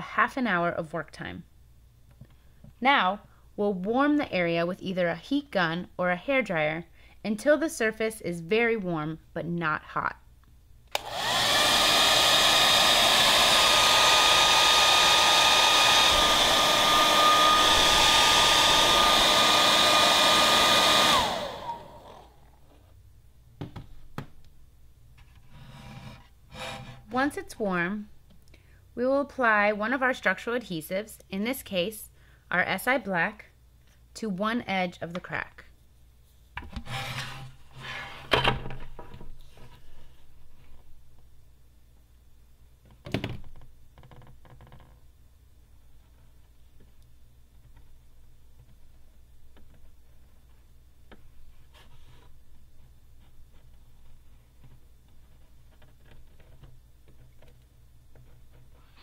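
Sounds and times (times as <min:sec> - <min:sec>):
hair dryer blowing: 0:11.0 - 0:22.5.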